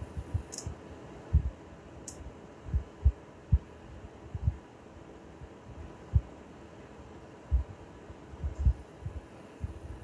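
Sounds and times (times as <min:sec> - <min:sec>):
faint steady hum: 0:00.0 - 0:10.0
soft low dull thumps: 0:01.3 - 0:01.6, 0:04.3 - 0:04.6, 0:06.1 - 0:06.3, 0:07.5 - 0:07.8, 0:08.4 - 0:09.8
high tick: 0:02.0 - 0:02.2.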